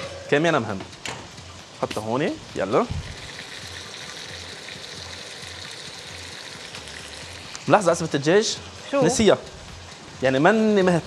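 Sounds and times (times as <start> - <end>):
livers sizzling in hot oil: 0.5 - 11.0.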